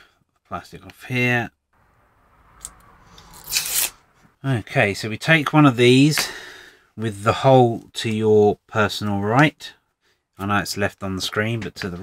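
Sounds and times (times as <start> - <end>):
plastic film peeling: 3.4 - 4.0.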